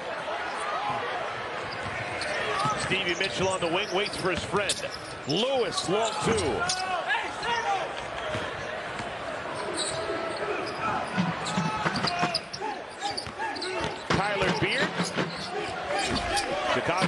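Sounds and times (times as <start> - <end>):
arena crowd noise: 0.0 - 17.0
sneaker squeaks: 1.6 - 6.9, 9.5 - 16.6.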